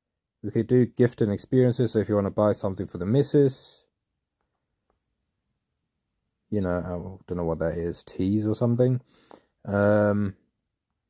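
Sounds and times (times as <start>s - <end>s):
person speaking: 0.4s - 3.9s, 6.5s - 10.4s.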